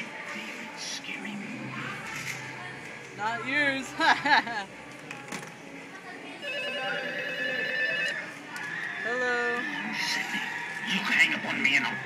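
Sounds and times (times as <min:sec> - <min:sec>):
electronic telephone ring: 0:06.4 - 0:08.3.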